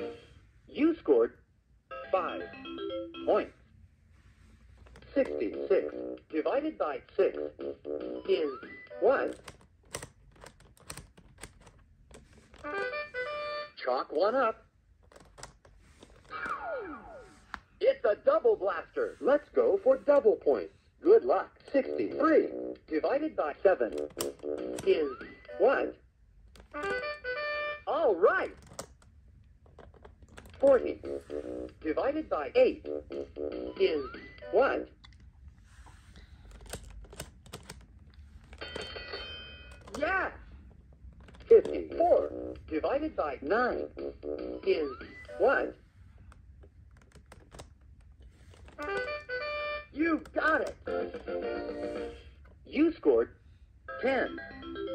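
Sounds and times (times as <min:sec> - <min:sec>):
plastic dial clicking: 0:23.9 - 0:24.9, 0:47.0 - 0:47.8.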